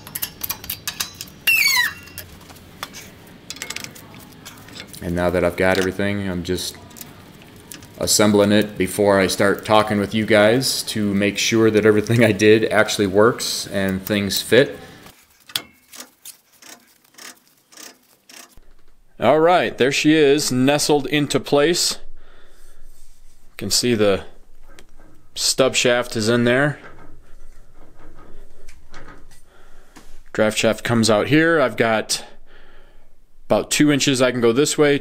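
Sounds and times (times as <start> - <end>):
metal axle clicking and rubbing: 0.0 - 6.1, 15.1 - 18.7
high metal-on-metal squeal: 1.5 - 2.2.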